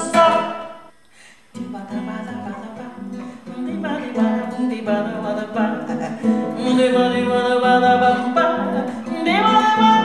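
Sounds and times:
woman singing: 0.0s - 0.8s, 1.6s - 10.0s
nylon-string guitar: 0.0s - 10.0s.

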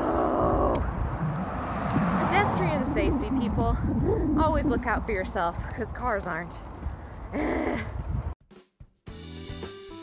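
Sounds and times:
low steady rumble: 0.4s - 6.8s
woman sighing: 7.3s - 8.0s.

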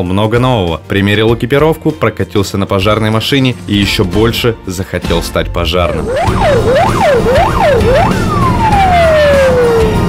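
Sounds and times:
fire engine siren: 6.0s - 10.0s.

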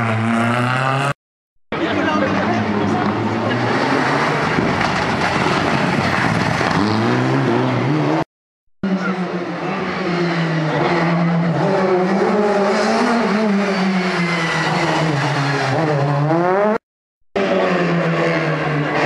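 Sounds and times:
rally car engine revving: 0.0s - 1.2s, 2.1s - 8.2s, 8.8s - 16.8s, 17.4s - 19.0s.

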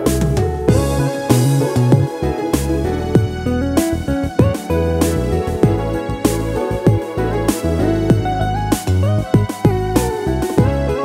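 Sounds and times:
bass: 0.0s - 11.0s
drums: 0.0s - 11.0s
plucked guitar: 0.0s - 11.0s.

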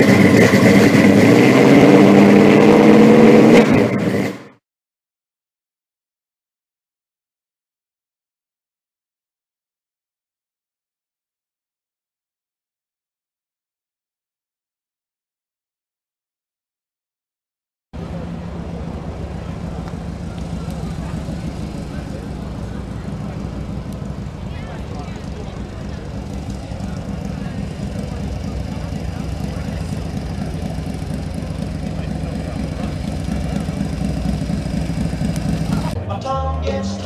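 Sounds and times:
low engine rumble: 18.0s - 37.0s
outdoor crowd chatter: 18.0s - 37.0s.

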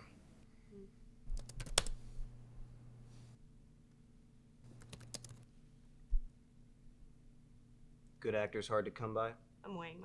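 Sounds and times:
faint low hum: 0.0s - 10.0s
laptop keyboard typing clicks: 1.4s - 2.0s, 4.8s - 5.4s.

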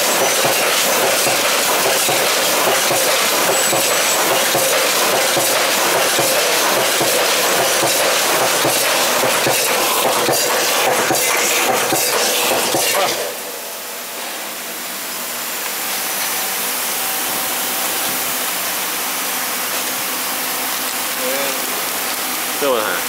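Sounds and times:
rapid machine clicks: 0.0s - 13.4s
machine hiss: 0.0s - 23.0s.

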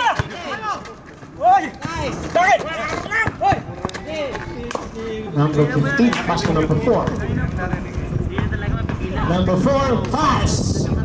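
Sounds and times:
players shouting calls: 0.0s - 10.5s.

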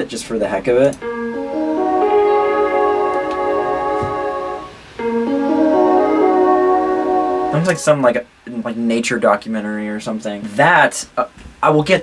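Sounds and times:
electric piano chords: 0.9s - 8.2s.

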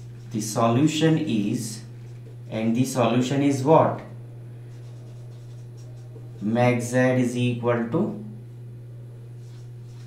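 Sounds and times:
low electrical hum: 0.0s - 10.0s
marker writing on whiteboard: 4.7s - 6.4s, 9.4s - 10.0s.

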